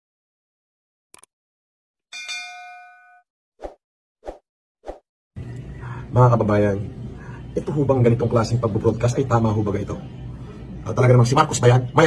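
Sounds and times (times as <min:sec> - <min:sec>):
notification bell ding: 0:02.1 - 0:03.2.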